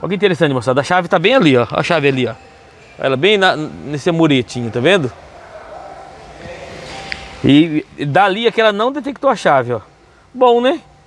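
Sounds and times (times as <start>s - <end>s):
workshop background noise: 0.0s - 10.8s.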